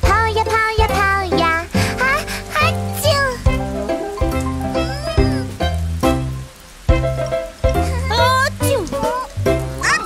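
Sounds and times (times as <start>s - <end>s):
children's song backing music: 0.0s - 5.8s
cartoon kitten voice: 2.0s - 5.6s, 7.8s - 10.0s.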